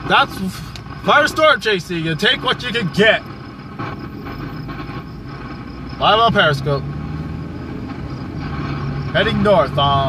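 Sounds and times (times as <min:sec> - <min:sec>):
car engine hum: 0:00.0 - 0:10.0
road noise in car: 0:00.0 - 0:10.0.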